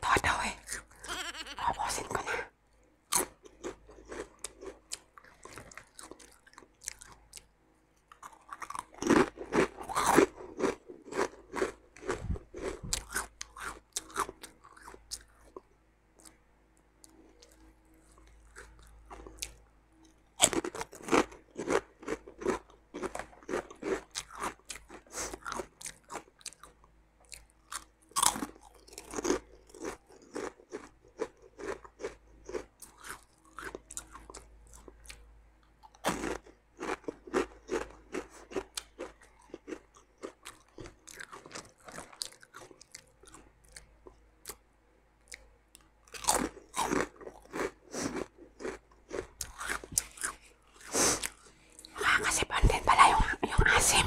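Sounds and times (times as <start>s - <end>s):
crunching snack chips: 3.1s - 7.2s, 8.1s - 15.6s, 20.4s - 35.2s, 35.9s - 43.9s, 45.8s - 52.2s.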